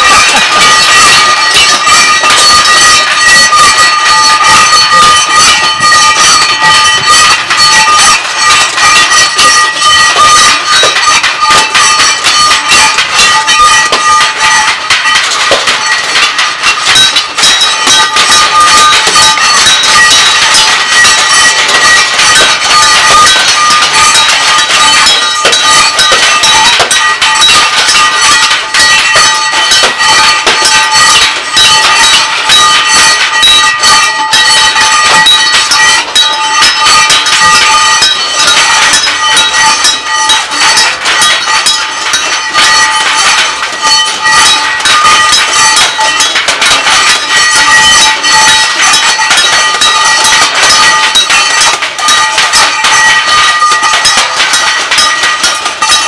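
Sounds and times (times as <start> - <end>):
ringing metal pitches: 0.0 - 56.0
scrap metal percussion clanging: 0.0 - 56.0.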